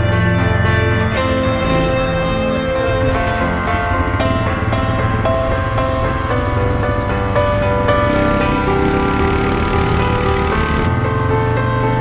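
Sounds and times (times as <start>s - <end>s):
background music with held notes: 0.0s - 12.0s
quad bike engines running: 0.8s - 12.0s.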